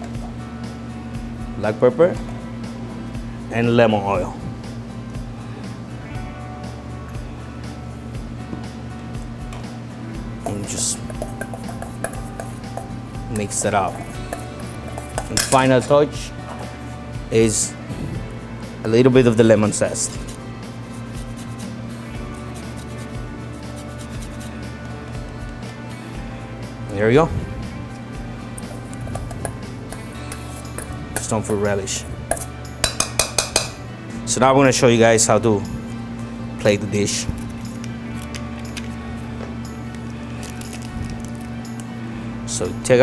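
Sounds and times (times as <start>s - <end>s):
background music: 0.0s - 43.0s
spoon stirring fruit in metal bowl: 10.4s - 16.8s, 28.6s - 33.8s.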